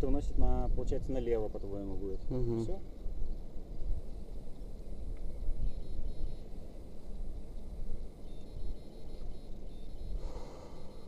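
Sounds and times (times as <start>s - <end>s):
wind buffeting microphone: 0.0s - 2.0s, 2.8s - 8.8s.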